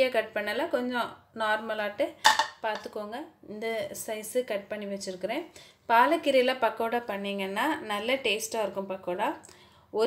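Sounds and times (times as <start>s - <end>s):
woman speaking: 0.0s - 9.4s.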